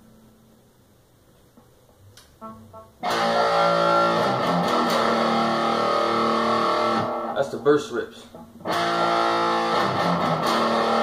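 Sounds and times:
electric guitar chords: 2.4 - 7.6, 8.4 - 11.0.

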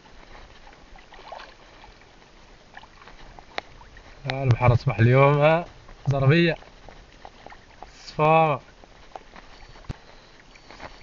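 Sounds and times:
water lapping against boat: 0.0 - 11.0
faint ticks: 3.0 - 4.8, 8.7 - 11.0.

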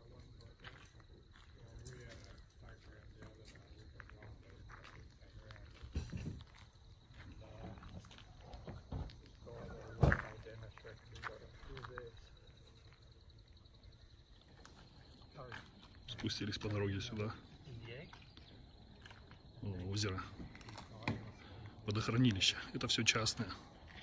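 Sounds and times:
faint voices talking: 0.0 - 24.0.

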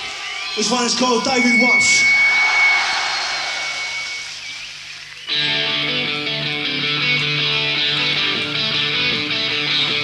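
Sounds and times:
crowd cheering and calling out: 0.0 - 5.7
thin high tone: 0.8 - 4.8.

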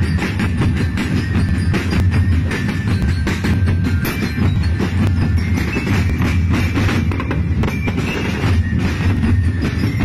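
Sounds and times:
street drum band playing: 0.0 - 10.0.

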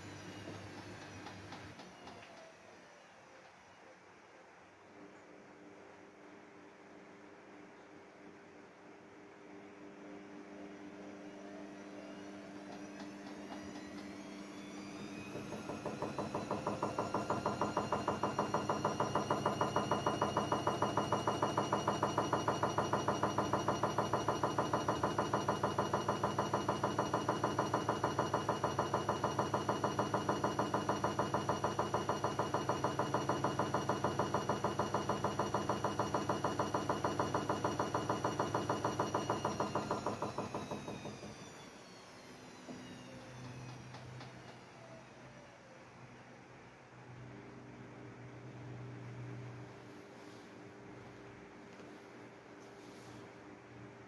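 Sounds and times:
washing machine spinning: 0.0 - 3.0, 10.1 - 54.0.

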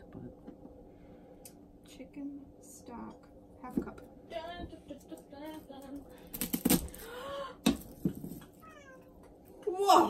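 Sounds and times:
cat meowing: 8.6 - 9.1.

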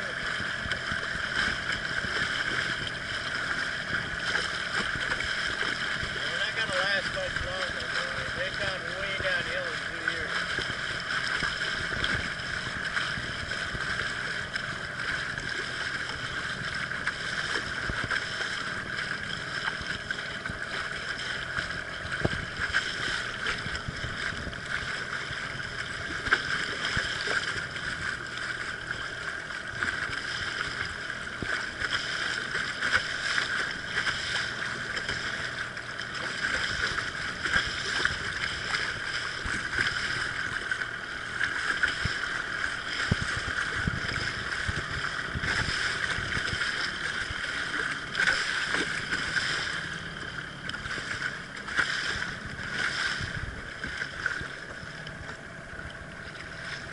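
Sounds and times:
boat motor whine: 0.0 - 56.9
hull knocks on water: 17.0 - 28.4.

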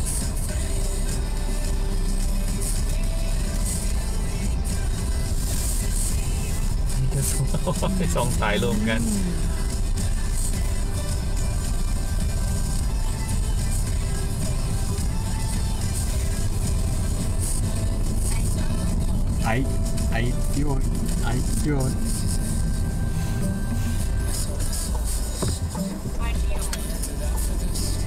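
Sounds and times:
car engine and tyres rumbling: 0.0 - 28.0
faint music: 0.0 - 28.0
person speaking: 6.9 - 9.6, 19.4 - 22.1.

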